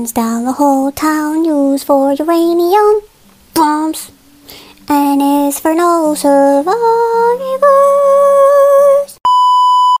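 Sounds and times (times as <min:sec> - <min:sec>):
person singing: 0:00.0 - 0:09.2
high-pitched test tone beep: 0:09.3 - 0:10.0.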